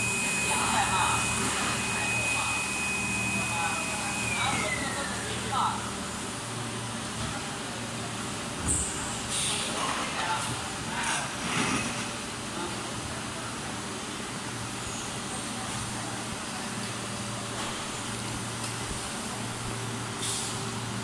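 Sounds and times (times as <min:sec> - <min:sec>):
factory machinery hum: 0:00.0 - 0:21.0.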